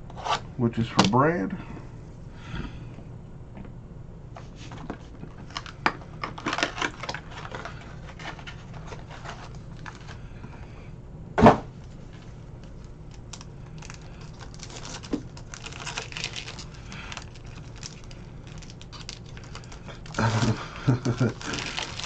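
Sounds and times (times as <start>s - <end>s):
foil wrappers crinkling and tearing: 5.2s - 10.2s, 12.6s - 22.0s
short laugh: 20.2s - 21.6s.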